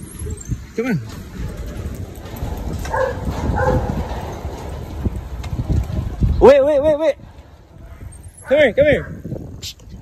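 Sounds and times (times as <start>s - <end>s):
low microphone rumble: 0.0s - 8.4s
dog barking: 2.9s - 4.0s.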